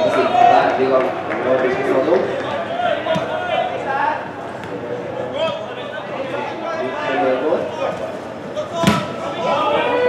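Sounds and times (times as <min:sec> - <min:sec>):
players' voices and shouts: 0:00.0 - 0:10.0
football kick thud: 0:08.8 - 0:09.1.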